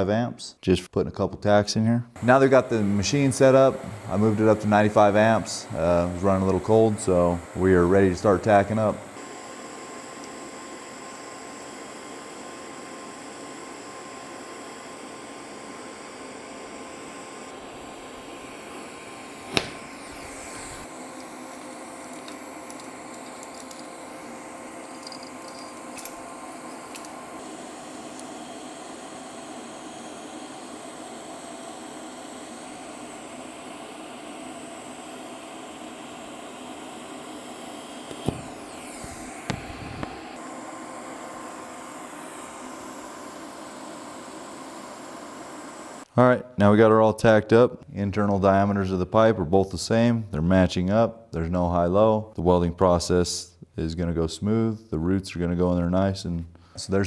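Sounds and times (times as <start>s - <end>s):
fume extractor fan hum: 2.1s - 50.7s
sharp click: 19.5s - 19.8s.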